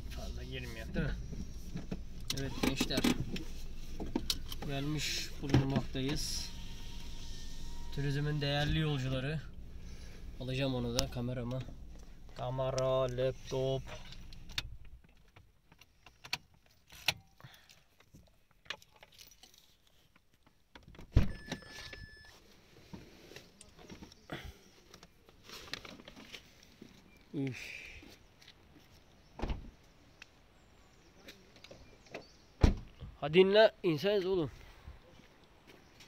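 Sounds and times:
handling clicks and knocks: 1.2 - 6.2.

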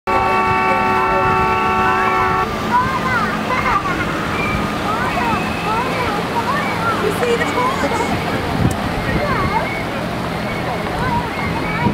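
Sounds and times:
horn blast: 0.1 - 2.6.

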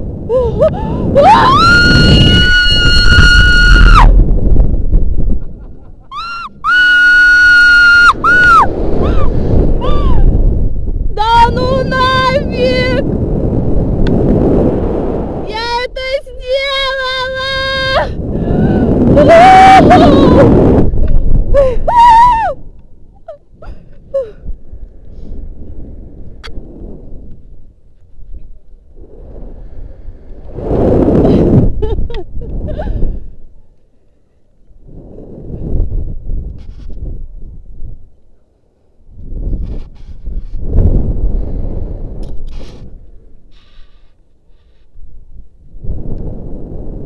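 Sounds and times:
wind on microphone: 0.0 - 33.8, 34.6 - 47.0
woman screaming: 0.3 - 4.1, 6.1 - 10.3, 17.1 - 20.5, 21.6 - 22.6
woman's high wavering cry: 17.4 - 20.5.

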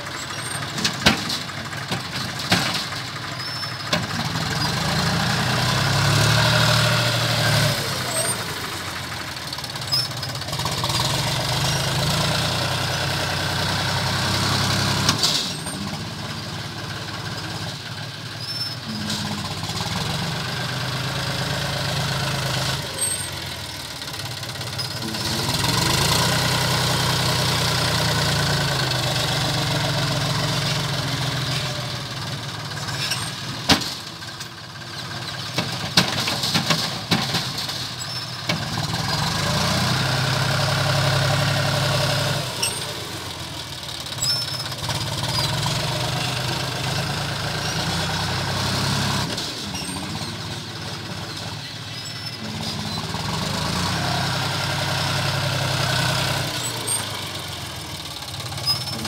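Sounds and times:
tractor diesel engine revving: 0.0 - 59.0.

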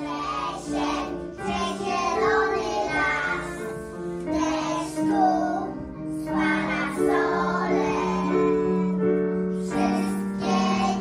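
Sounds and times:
children singing: 0.0 - 11.0
keyboard accompaniment: 0.0 - 11.0.

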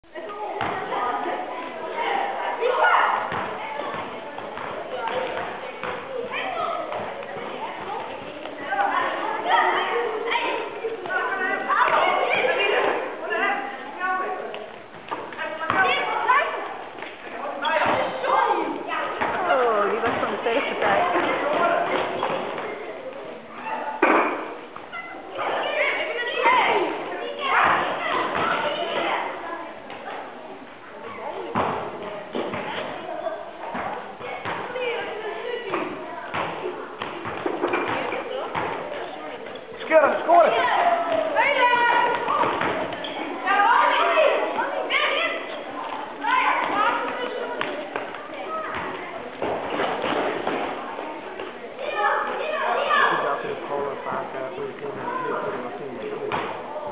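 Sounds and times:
children chattering and calling: 0.0 - 56.9
basketballs bouncing on hard floor: 0.6 - 0.9, 3.3 - 6.2, 14.5 - 16.0, 33.6 - 34.8, 35.7 - 39.8, 41.9 - 43.2, 46.6 - 50.8.

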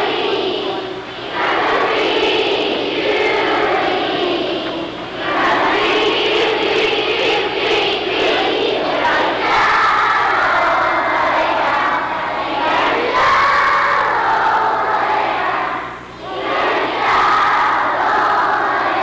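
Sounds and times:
crowd of children's voices: 0.0 - 19.0.

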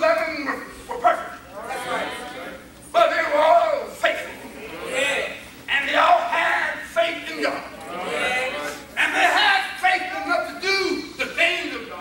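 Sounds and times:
man preaching: 0.0 - 12.0.

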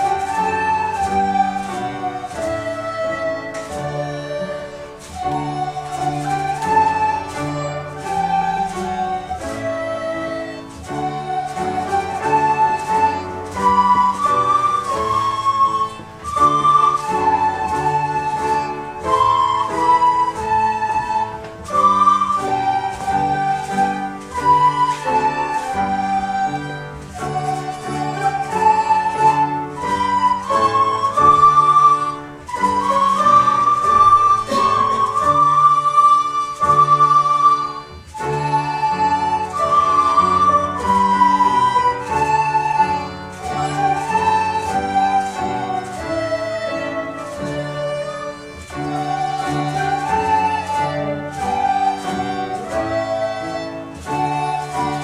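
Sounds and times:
children's recorder ensemble: 0.0 - 55.0.

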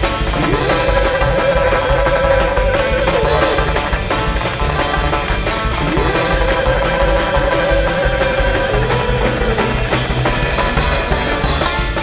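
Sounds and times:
acoustic guitar: 0.0 - 12.0
drums: 0.0 - 12.0
upright bass: 0.0 - 12.0.

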